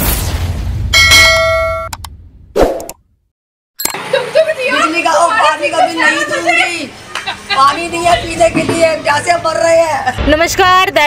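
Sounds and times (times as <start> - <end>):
bright metallic ding: 1.0 - 1.9.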